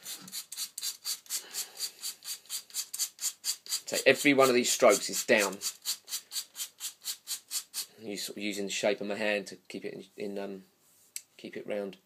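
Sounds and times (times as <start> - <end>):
sandpaper rubbing leather: 0.0 - 7.9.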